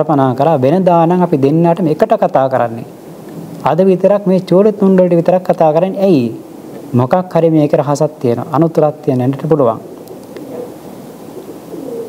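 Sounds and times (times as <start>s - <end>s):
steady hiss: 0.0s - 12.0s
bird cooing: 9.8s - 12.0s.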